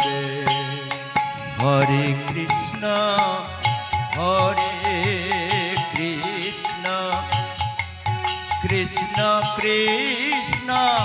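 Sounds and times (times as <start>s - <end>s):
man chanting: 0.0s - 7.6s
harmonium chords: 0.0s - 11.0s.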